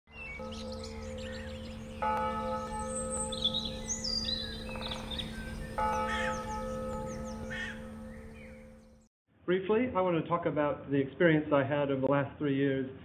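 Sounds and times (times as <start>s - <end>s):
birds chirping: 0.1s - 9.1s
bell struck: 0.3s - 9.0s.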